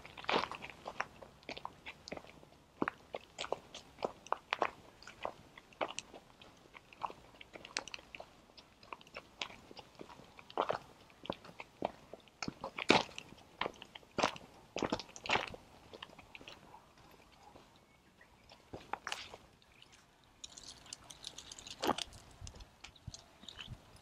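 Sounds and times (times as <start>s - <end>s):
footsteps crunching on gravel: 0.0s - 17.7s, 18.5s - 23.8s.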